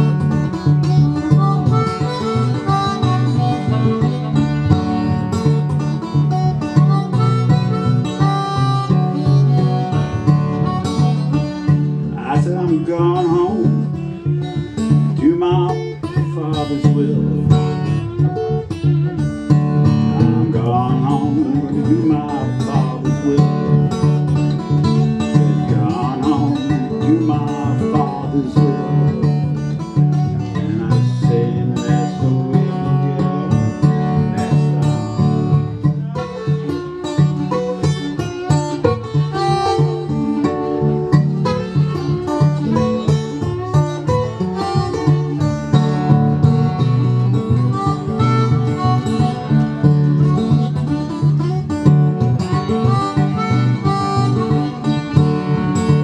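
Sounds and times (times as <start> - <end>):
fingerpicked acoustic guitar: 0.0 - 56.0
harmonica: 0.0 - 56.0.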